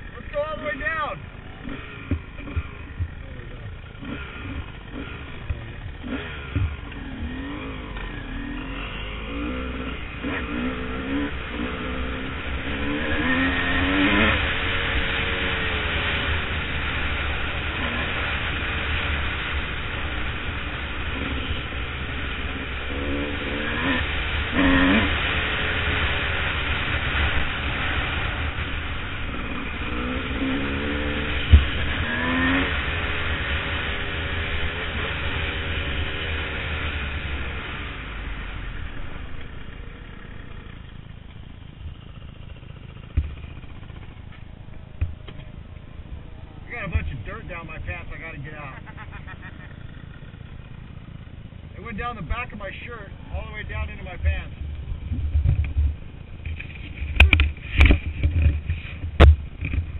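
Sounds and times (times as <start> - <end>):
dirt bike engine revving: 0.0 - 59.9
wind noise on microphone: 54.8 - 59.9.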